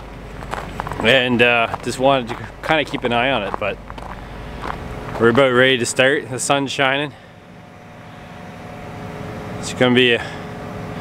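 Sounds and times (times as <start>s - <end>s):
mechanical hum with low rumble: 0.0s - 11.0s.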